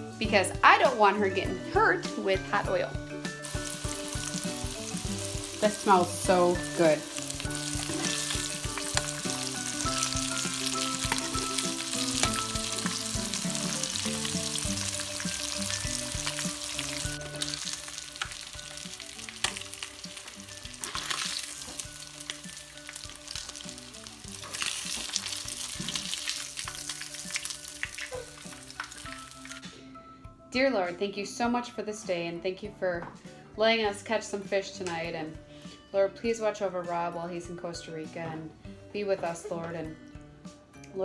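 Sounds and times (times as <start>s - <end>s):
fish fillets sizzling in oil: 3.4s - 29.7s.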